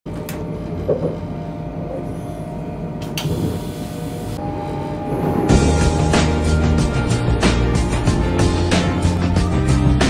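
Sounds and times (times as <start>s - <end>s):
train low rumble: 4.4s - 8.7s.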